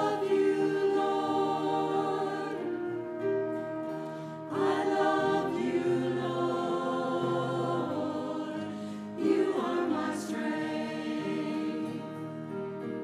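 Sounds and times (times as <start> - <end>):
choir singing sacred music: 0.0 - 12.6.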